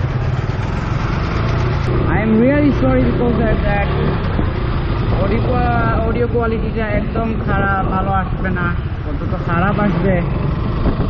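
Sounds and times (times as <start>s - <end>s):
motorcycle engine and road rumble: 0.0s - 11.0s
wind on microphone: 1.8s - 11.0s.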